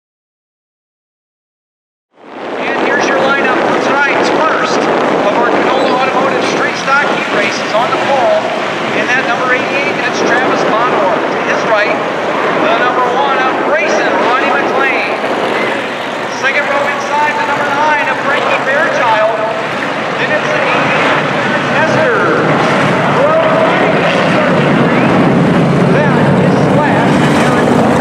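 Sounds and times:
race car engines: 2.2s - 28.0s
wind on microphone: 2.2s - 28.0s.

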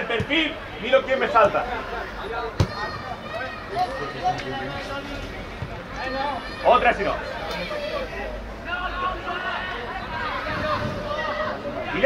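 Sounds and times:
faint voices: 0.0s - 12.0s.

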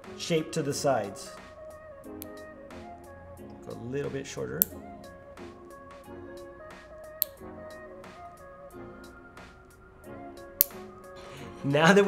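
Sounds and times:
soft music with plucked tones: 0.0s - 12.0s
nail clipper snipping: 2.1s - 2.4s, 7.2s - 7.4s, 10.6s - 10.9s.

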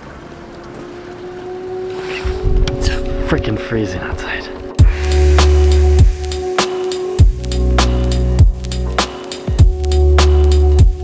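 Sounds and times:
steady held tone: 1.8s - 8.3s
wind rumbling on microphone: 1.9s - 5.4s.

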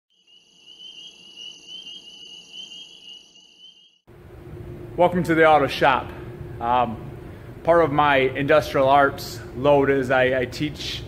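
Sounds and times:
insects trilling: 0.1s - 4.0s.

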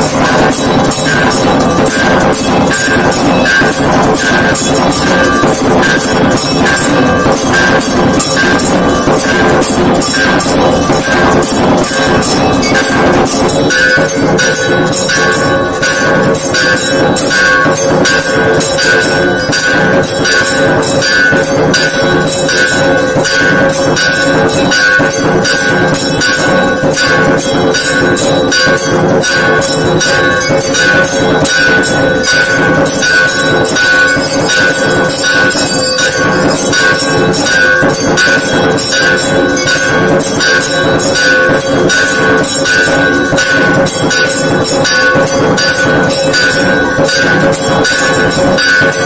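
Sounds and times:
temple bells ringing: 0.0s - 49.0s.

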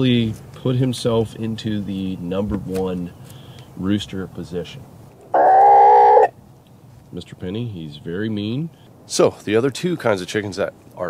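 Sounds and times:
chicken calling: 5.2s - 6.3s.

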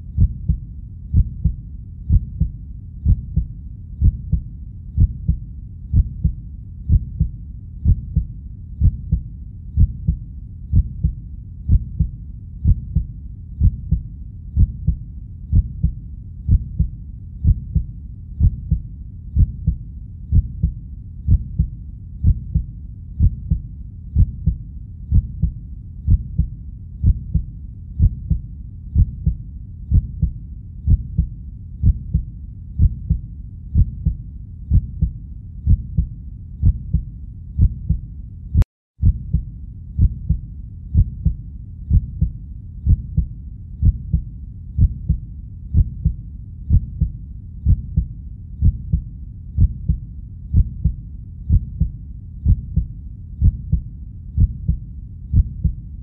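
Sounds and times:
slow heartbeat: 0.0s - 56.0s.

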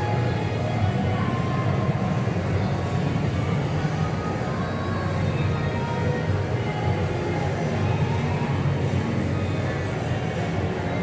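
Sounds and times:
arcade game machines: 0.0s - 11.0s
continuous low rumble: 0.0s - 11.0s.

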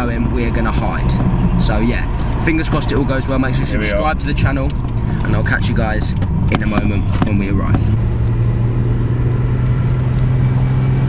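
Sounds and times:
car interior engine and road drone: 0.0s - 11.0s.

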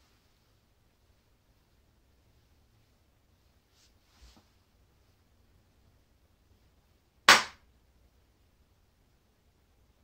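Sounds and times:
sharp crack-like impact: 7.3s - 7.6s.

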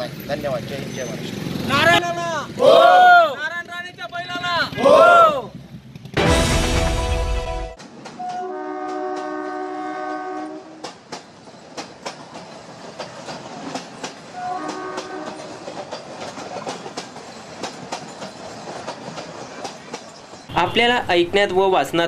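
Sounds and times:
train horn blasts: 6.2s - 10.9s, 14.3s - 15.6s
train wheels clacking on rail joints: 7.8s - 9.6s, 10.6s - 20.5s.

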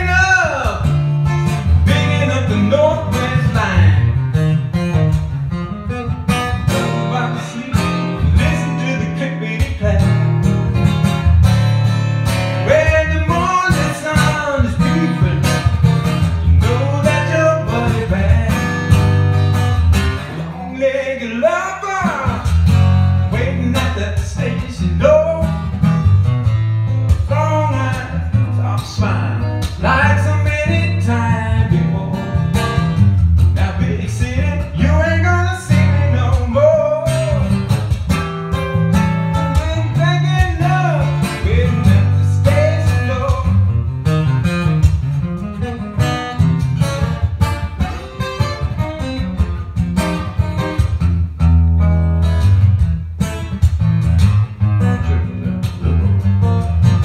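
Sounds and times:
man singing: 0.0s - 4.3s, 6.5s - 10.8s, 12.5s - 19.4s, 20.3s - 26.1s, 27.1s - 37.8s, 38.6s - 43.9s
acoustic blues guitar: 0.0s - 57.0s.

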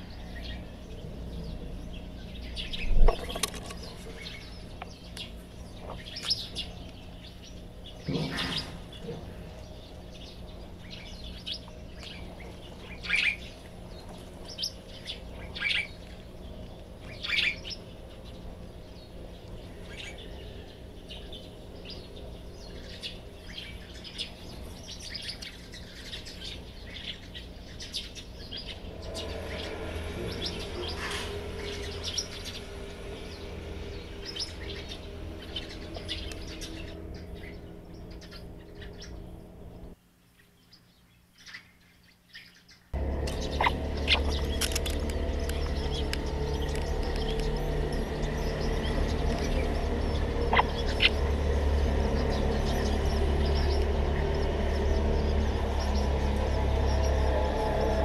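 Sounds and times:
low electrical hum: 0.0s - 58.0s
sparrows chirping: 0.0s - 58.0s.

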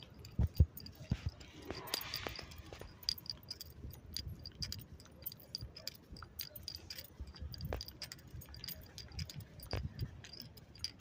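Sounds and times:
keys jingling: 0.0s - 11.0s
soft footsteps: 0.0s - 11.0s.

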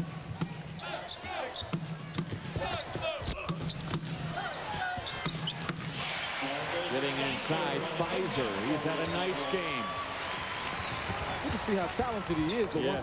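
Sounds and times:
arena crowd noise and voices: 0.0s - 13.0s.

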